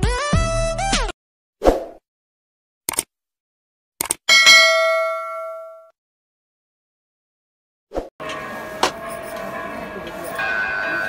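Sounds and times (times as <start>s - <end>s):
notification bell ding: 4.3s - 5.9s.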